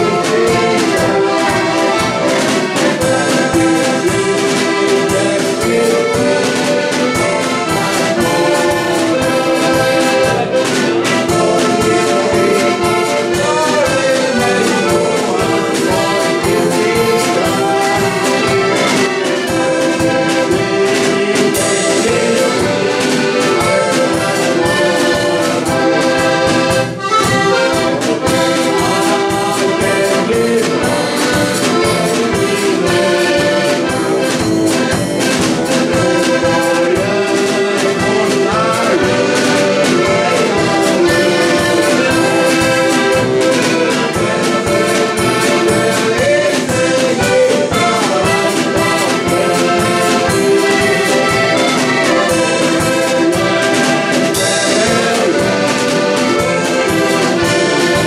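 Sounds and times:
button accordions playing folk tune: 0:00.0 - 0:58.0.

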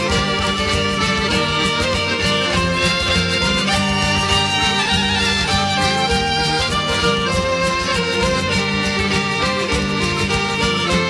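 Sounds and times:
folk band playing instrumental: 0:00.0 - 0:11.0.

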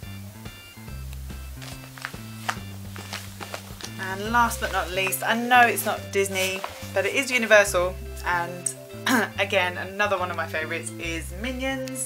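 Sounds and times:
background music bass line: 0:00.0 - 0:12.0.

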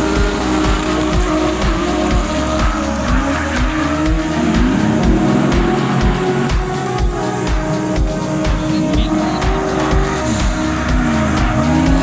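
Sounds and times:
car engines at high revs: 0:00.0 - 0:12.0
music with deep beat: 0:00.0 - 0:12.0.

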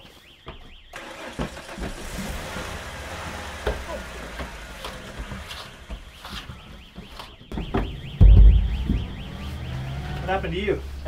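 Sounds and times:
van engine running: 0:01.0 - 0:06.0
thumps on metal floor: 0:07.5 - 0:09.1.

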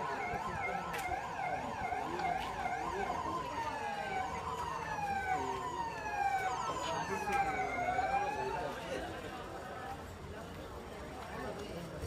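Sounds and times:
emergency siren wailing: 0:00.0 - 0:08.9.

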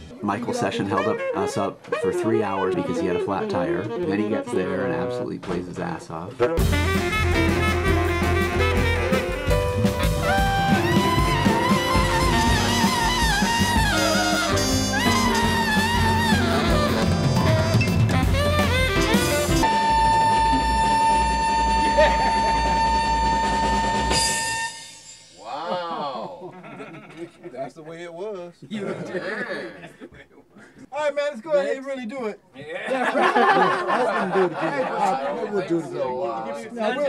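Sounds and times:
saxophone solo: 0:00.8 - 0:05.3, 0:06.4 - 0:25.0
drums: 0:06.4 - 0:26.2
bass: 0:06.5 - 0:24.6.

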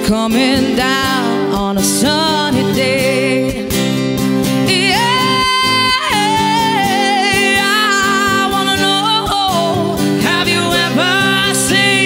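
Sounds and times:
strummed acoustic guitar: 0:00.0 - 0:12.0
people singing: 0:04.7 - 0:12.0.

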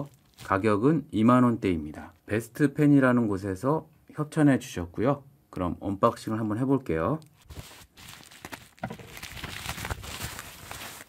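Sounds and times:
bubble wrap crinkling and crackling: 0:00.0 - 0:01.0, 0:07.0 - 0:11.0.

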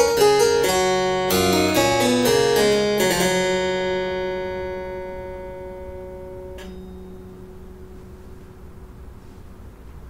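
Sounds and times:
harpsichord dampers clicking: 0:00.0 - 0:07.2
harpsichord chord ringing: 0:00.0 - 0:09.0.

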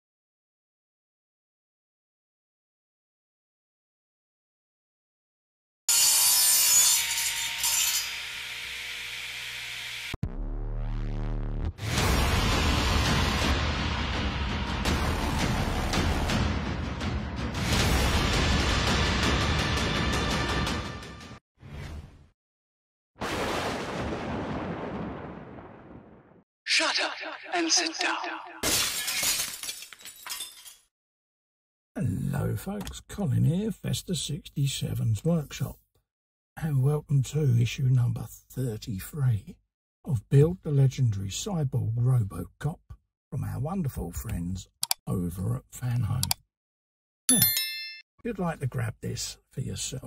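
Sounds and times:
saw cutting through wood: 0:05.9 - 0:10.2
loud shattering crash: 0:28.6 - 0:30.6.

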